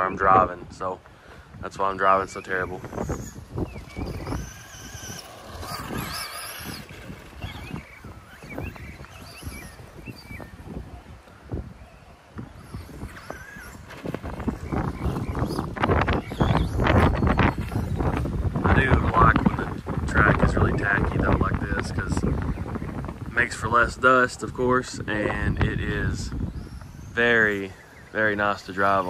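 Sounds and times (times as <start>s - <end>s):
wind buffeting microphone: 0.0s - 29.0s
electric motor whining: 2.2s - 23.8s.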